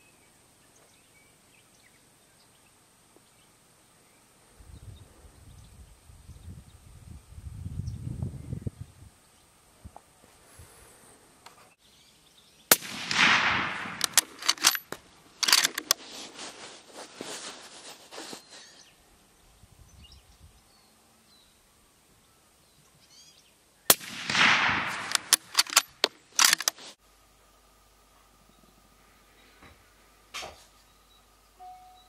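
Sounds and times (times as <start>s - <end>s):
suppressed rifle shots: 12.7s - 16.0s, 23.9s - 26.8s
quick clicks: 13.1s - 16.0s, 23.9s - 27.0s.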